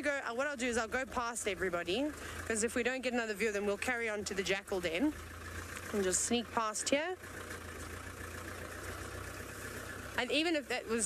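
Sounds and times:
vehicle engine low drone: 0:00.0 - 0:11.0.

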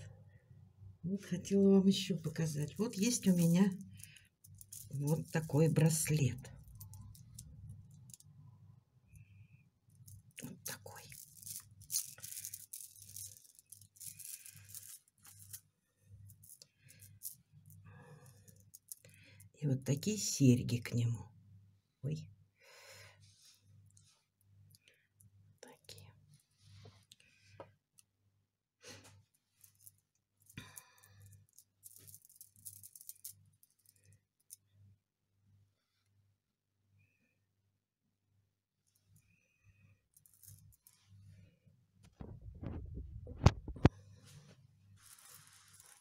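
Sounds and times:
beads rattling and clicking: 0:02.2 - 0:08.5, 0:09.9 - 0:19.6, 0:29.6 - 0:34.7, 0:40.1 - 0:41.1, 0:45.0 - 0:46.0.

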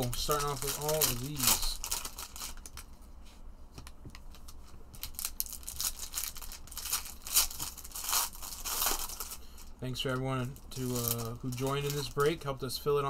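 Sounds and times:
foil packs torn open: 0:00.0 - 0:02.9, 0:05.0 - 0:09.7, 0:10.8 - 0:12.3
foil wrappers crinkling: 0:00.0 - 0:03.0, 0:04.3 - 0:12.5.

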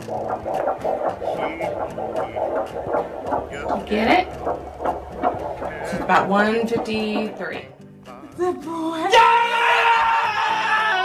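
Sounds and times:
fast fetal heartbeat pulsing: 0:00.0 - 0:07.8
steady hum: 0:00.0 - 0:08.0.

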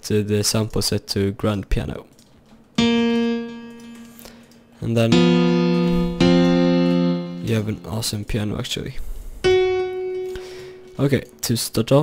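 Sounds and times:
piano note ringing: 0:02.8 - 0:08.4, 0:09.4 - 0:11.4.

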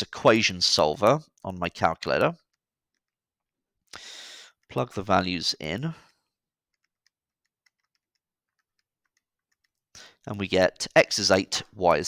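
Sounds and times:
calculator keys clicking: 0:06.7 - 0:09.9.

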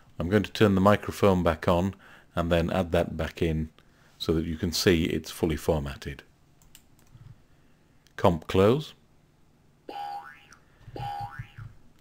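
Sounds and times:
synthetic boing tone: 0:09.9 - 0:11.8.

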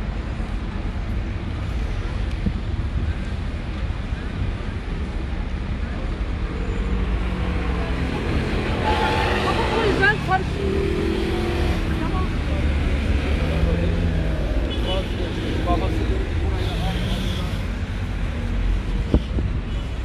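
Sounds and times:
city road traffic rumble: 0:00.0 - 0:20.0.

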